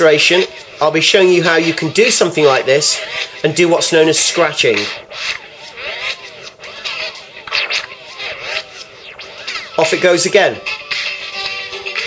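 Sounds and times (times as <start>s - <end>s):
turntable scratching: 0.0s - 12.0s.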